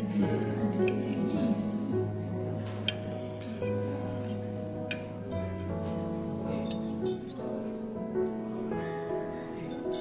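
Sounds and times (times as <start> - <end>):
soft background music: 0.0 - 10.0
cutlery clinking on porcelain plate: 4.9 - 5.1.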